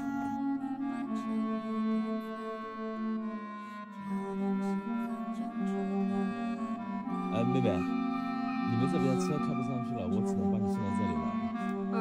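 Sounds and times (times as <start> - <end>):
slow melody of long held notes: 0.0 - 12.0.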